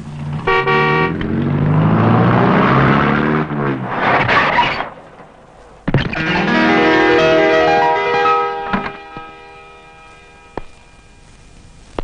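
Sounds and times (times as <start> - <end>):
car engine approaching: 0.0 - 11.2
car horn honk: 0.4 - 1.4, 6.2 - 11.2.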